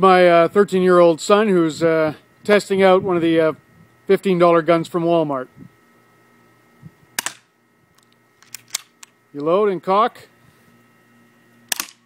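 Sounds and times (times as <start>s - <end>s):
airsoft gun click: 7.2s - 7.4s, 11.7s - 12.0s.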